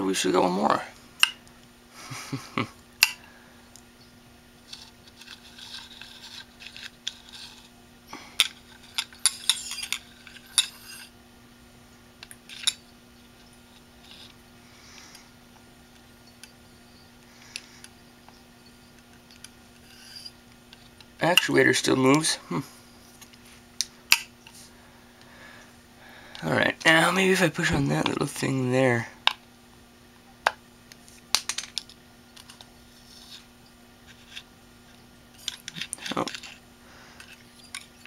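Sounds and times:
metal hand tool clinking and scraping: 8.4 - 11.1, 18.3 - 20.4.

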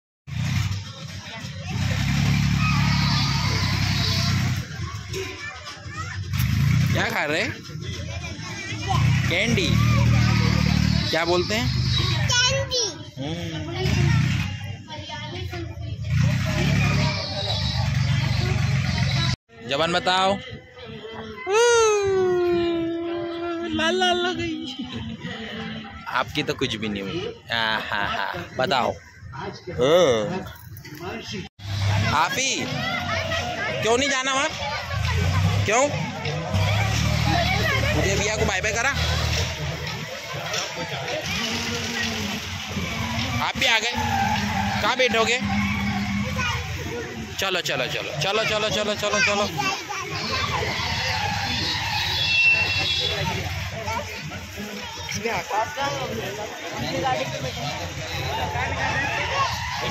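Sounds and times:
voices talking: 0.4 - 59.9
low mechanical drone: 44.2 - 47.3.

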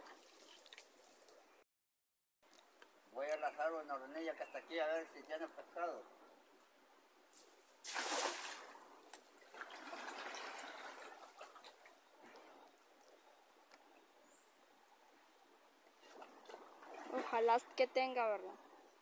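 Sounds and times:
faint trickle of water: 0.0 - 1.6
cast net splashing into water: 7.8 - 8.8, 9.4 - 11.9
water splashing and sloshing: 7.8 - 13.2, 15.9 - 18.8.

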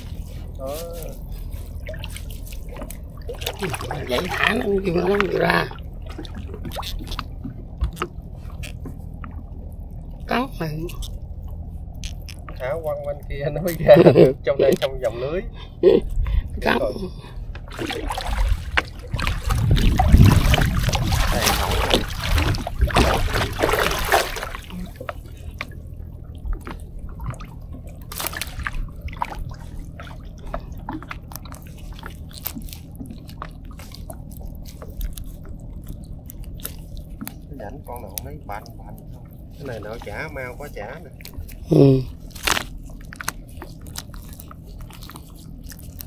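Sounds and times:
wet net being hauled: 0.0 - 9.0, 17.6 - 25.7, 26.6 - 46.0
water dripping and sloshing: 0.0 - 13.4, 17.3 - 46.0
light clicks and rustles: 26.4 - 46.0.

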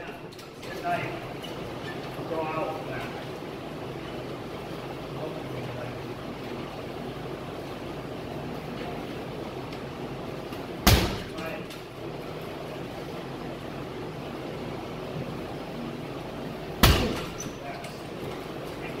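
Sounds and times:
strikes smacking a pad: 10.8 - 11.5, 16.8 - 17.4.

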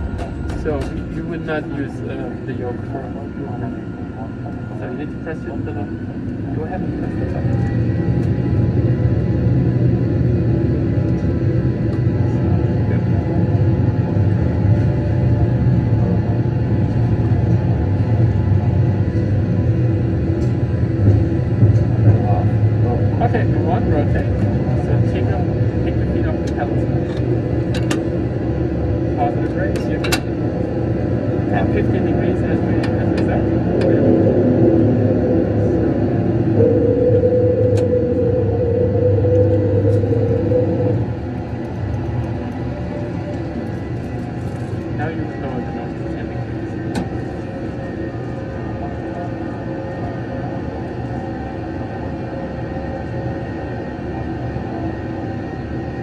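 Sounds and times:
simulator engine rumble: 0.0 - 56.0
steady high tone: 33.4 - 44.0.

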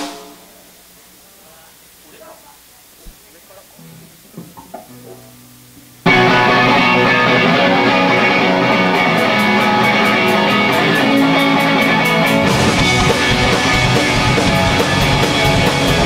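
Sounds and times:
live rock band playing: 0.0 - 0.6, 6.0 - 16.0
quiet guitar notes: 3.0 - 16.0.

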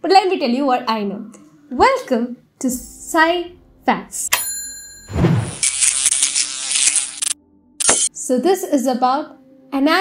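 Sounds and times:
rapid buzzing rattle: 5.6 - 8.1.

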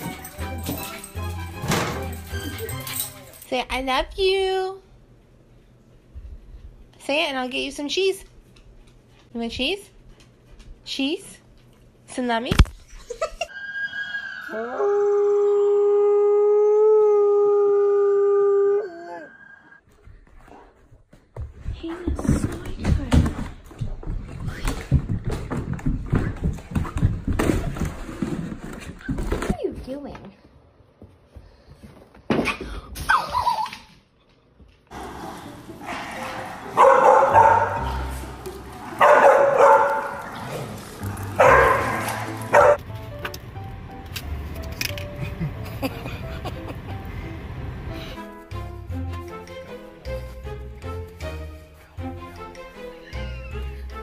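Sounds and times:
background music: 0.0 - 3.5, 34.9 - 54.0
dog howling: 13.8 - 19.7
puppies barking: 35.8 - 42.8.

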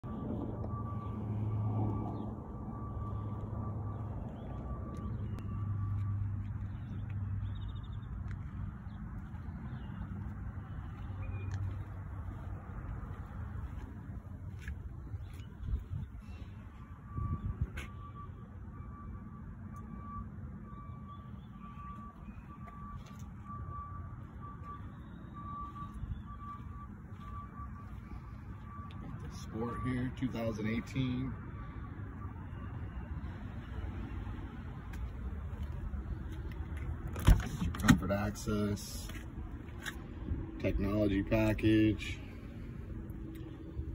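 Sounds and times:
high-pitched warning beeps: 0.0 - 6.4, 15.3 - 33.8.

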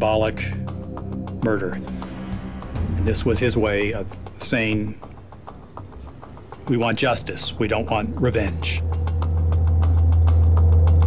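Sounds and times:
loud low drone: 0.0 - 11.0
rapid ticks: 3.6 - 9.7.

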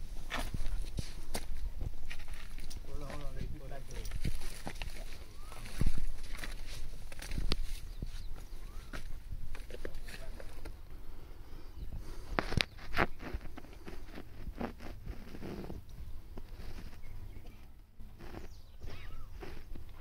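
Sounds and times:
scuffs and rustles near microphone: 0.0 - 10.8, 12.0 - 20.0.

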